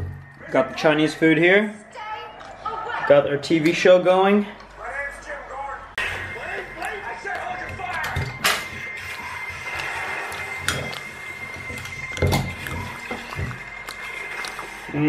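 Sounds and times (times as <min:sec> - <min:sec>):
television music: 0:00.0 - 0:15.0
television speech: 0:00.2 - 0:15.0.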